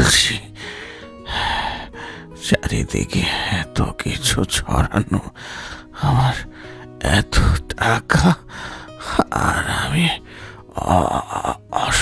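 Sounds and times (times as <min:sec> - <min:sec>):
soft sustained music: 0:00.0 - 0:12.0.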